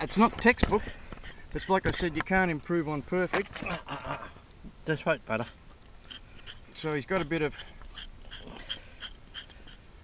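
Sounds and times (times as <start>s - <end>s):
hoof pick scraping hoof: 6.0s - 9.8s.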